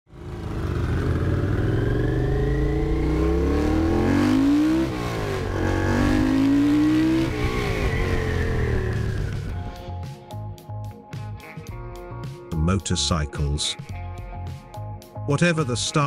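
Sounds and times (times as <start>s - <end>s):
motorcycle engine accelerating: 0.1s - 9.9s.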